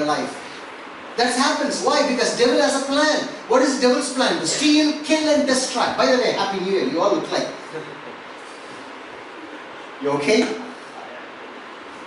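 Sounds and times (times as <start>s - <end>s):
constant room hiss: 0.0s - 12.0s.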